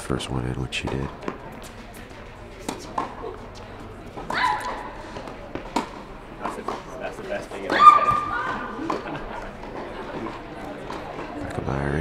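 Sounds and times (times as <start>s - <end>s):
tennis ball struck by rackets: 2.6s - 11.3s.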